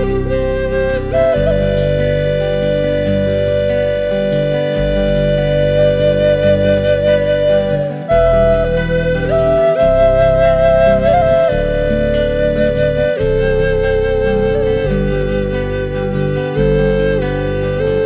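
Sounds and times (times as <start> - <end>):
flute melody: 0.0 - 18.0
sustained low chords: 0.0 - 18.0.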